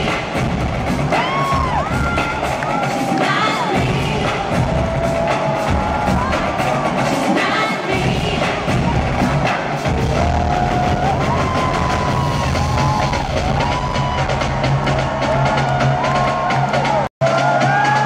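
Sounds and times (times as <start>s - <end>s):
live pop concert music: 0.0s - 18.0s
pounding bass beat: 0.0s - 18.0s.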